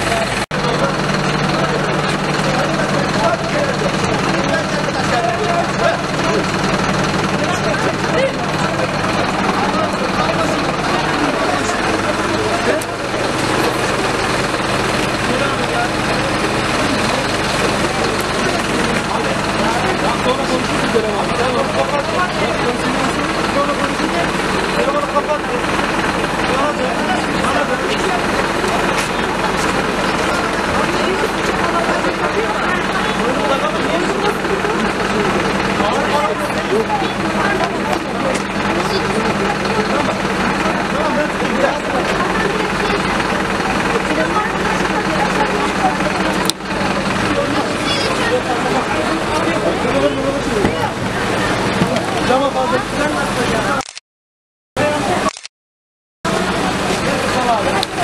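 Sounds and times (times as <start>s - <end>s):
vehicle engine idling: 0.0s - 53.8s, 56.3s - 58.0s
voices talking and calling: 0.0s - 53.8s, 56.3s - 58.0s.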